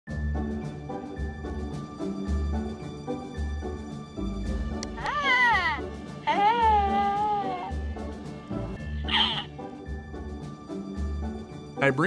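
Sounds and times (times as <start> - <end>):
background music: 0.1 - 12.0.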